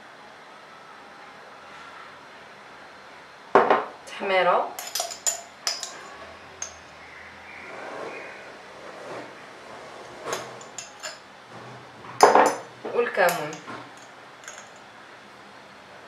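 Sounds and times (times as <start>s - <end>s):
metal spoon clinking glass jars: 4.8s - 7.0s, 10.3s - 11.2s, 12.2s - 14.9s.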